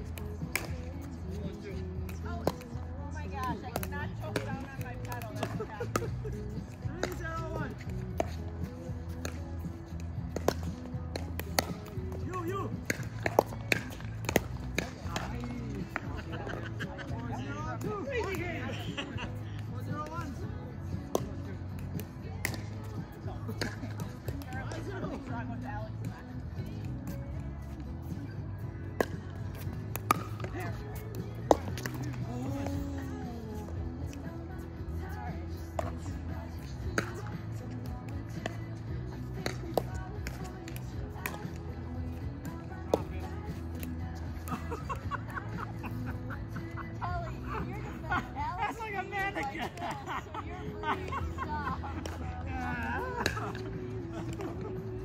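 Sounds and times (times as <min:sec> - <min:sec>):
music: 0:00.0 - 0:55.0
people's voices: 0:00.0 - 0:55.0.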